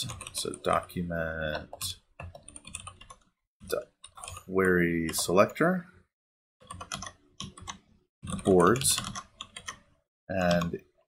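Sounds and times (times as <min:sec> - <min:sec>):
computer keyboard typing: 0:00.0 - 0:00.8, 0:01.5 - 0:03.3, 0:04.0 - 0:05.3, 0:06.6 - 0:09.8.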